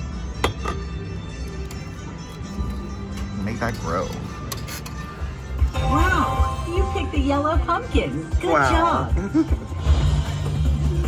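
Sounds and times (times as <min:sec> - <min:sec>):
slot machine music: 0:00.0 - 0:11.0.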